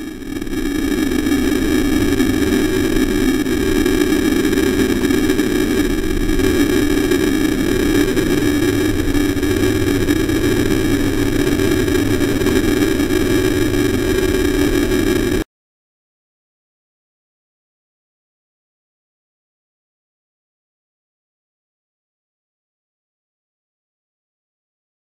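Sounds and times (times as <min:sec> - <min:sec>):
buzzing hum: 0:00.0 - 0:15.4
electronic static: 0:00.0 - 0:15.4.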